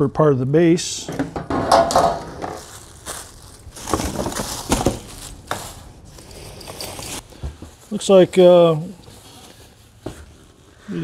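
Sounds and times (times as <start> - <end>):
plastic wrap and foam rustling: 1.9 - 11.0.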